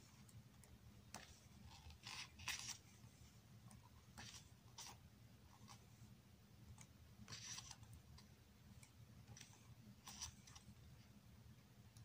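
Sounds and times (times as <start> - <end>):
photo book pages turning: 0.6 - 5.0, 6.8 - 7.9, 9.2 - 10.7.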